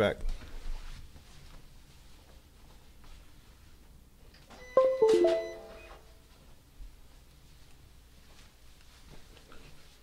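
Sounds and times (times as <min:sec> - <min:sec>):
short electronic chime: 0:04.8 - 0:06.0.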